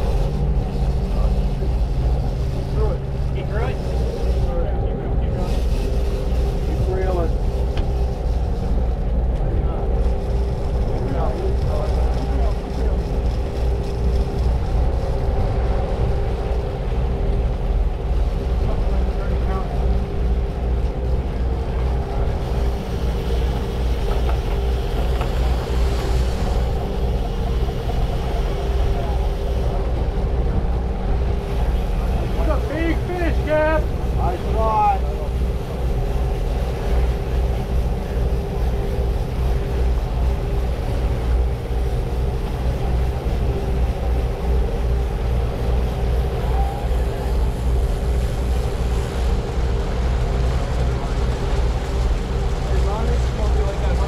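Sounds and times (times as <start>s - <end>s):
boat engines droning: 0.0s - 54.0s
water rushing along hull: 0.0s - 54.0s.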